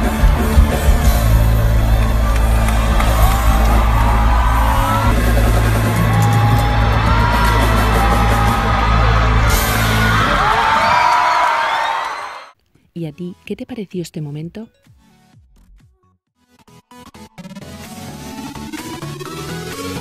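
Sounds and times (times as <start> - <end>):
loud pop concert music: 0.0 - 12.4
crowd yelling: 0.0 - 12.6.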